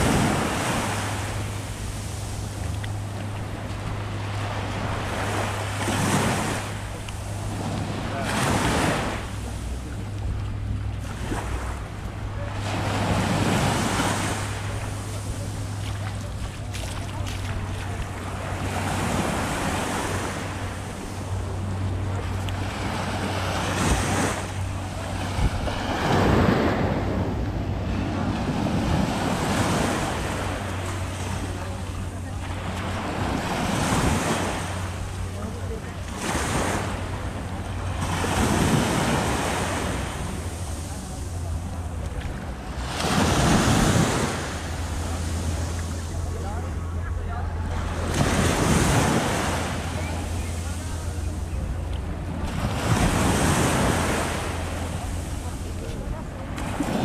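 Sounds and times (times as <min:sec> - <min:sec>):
small waves breaking on sand: 0:00.0 - 0:57.0.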